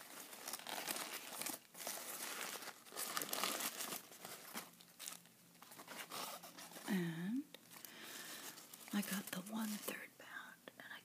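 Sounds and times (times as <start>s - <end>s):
paper wrapper crinkling: 0.0s - 6.9s, 7.6s - 10.0s.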